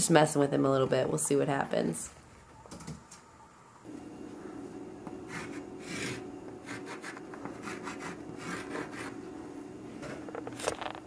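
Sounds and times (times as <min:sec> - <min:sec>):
chalk scraping on chalkboard: 0:05.3 - 0:09.2.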